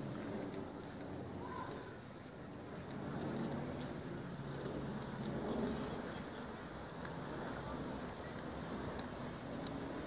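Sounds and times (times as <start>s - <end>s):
background rush: 0.0s - 10.0s
steady low hum: 0.0s - 10.0s
birds chirping: 1.4s - 4.2s, 5.1s - 9.9s.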